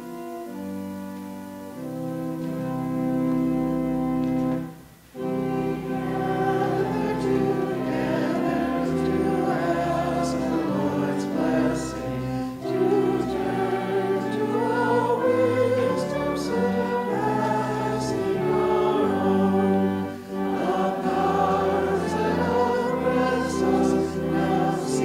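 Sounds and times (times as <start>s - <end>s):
pipe organ playing held chords: 0.0s - 25.0s.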